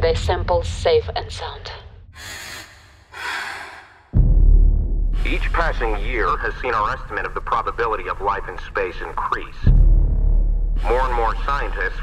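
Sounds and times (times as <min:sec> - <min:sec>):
person breathing out: 0:02.2 - 0:04.2.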